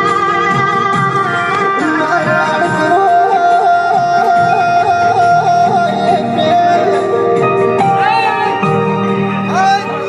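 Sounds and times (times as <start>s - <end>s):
harmonium devotional folk music: 0.0s - 10.0s.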